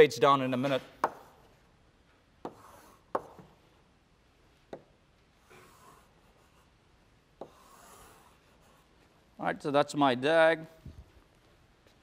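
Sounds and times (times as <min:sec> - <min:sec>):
chalk tapping board: 0:01.0 - 0:01.5, 0:02.4 - 0:03.6, 0:07.4 - 0:08.8
chalk scratching on blackboard: 0:02.4 - 0:03.5, 0:05.4 - 0:06.8, 0:07.4 - 0:09.0.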